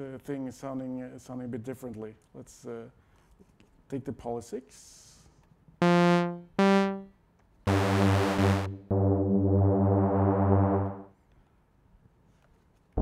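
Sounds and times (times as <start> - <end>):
synthesizer notes and chords: 5.8 - 7.1, 7.7 - 11.1.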